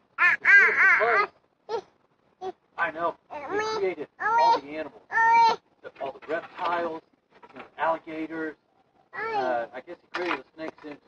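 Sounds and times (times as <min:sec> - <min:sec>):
person imitating bird calls: 0:00.1 - 0:01.4.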